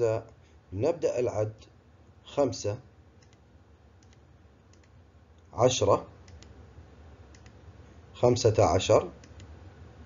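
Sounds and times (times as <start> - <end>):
faint computer clicks: 3.2 - 5.5, 6.2 - 6.6, 7.3 - 7.6, 9.2 - 9.6.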